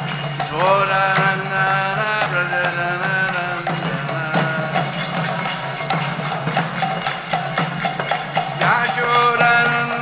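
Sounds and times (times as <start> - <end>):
light percussion strikes: 0.0 - 10.0
person chanting: 8.6 - 10.0.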